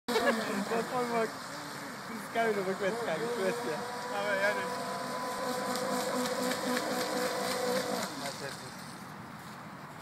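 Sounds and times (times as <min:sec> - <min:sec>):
distant electric boat hum: 0:00.1 - 0:09.1.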